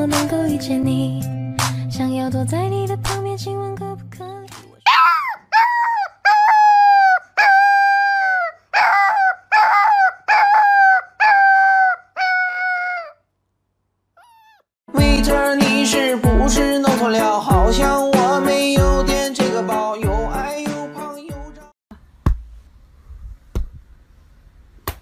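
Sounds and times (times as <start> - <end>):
music: 0.0 - 4.8, 14.9 - 21.7
puppy howling: 4.9 - 13.2, 14.2 - 14.6.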